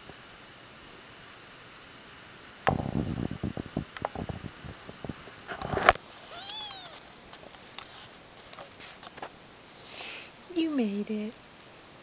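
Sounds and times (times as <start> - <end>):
kitten meowing: 6.3 - 7.0.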